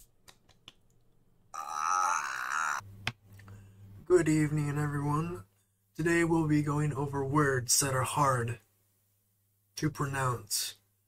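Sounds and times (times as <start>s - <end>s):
wavering vocal cry: 1.6s - 2.8s.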